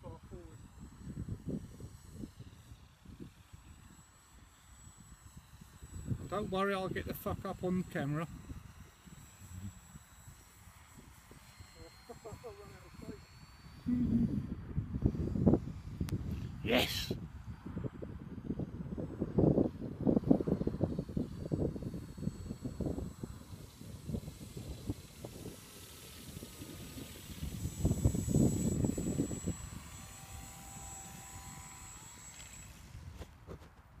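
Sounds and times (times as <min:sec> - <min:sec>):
model aircraft motor whine: 0:00.0 - 0:33.9
wind buffeting microphone: 0:13.8 - 0:32.2.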